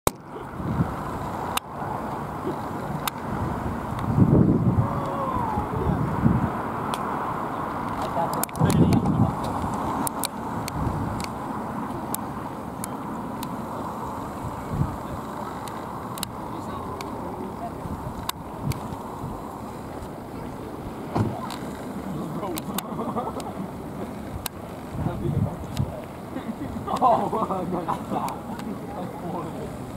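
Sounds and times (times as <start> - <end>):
indistinct voices: 4.8 - 6.2
sharp clicks: 7.9 - 11.4.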